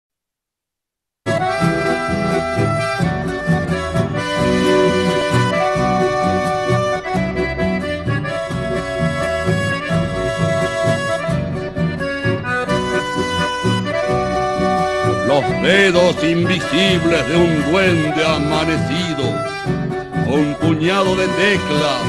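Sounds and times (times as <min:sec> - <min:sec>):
accordion melody: 0:01.3 - 0:22.0
rhythmic bass accompaniment: 0:01.3 - 0:22.0.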